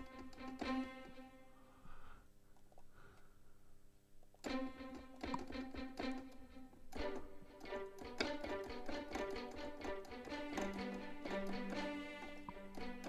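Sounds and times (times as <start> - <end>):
pizzicato strings: 0.0 - 1.5, 4.4 - 13.0
sustained string tones: 0.0 - 1.7, 4.4 - 13.0.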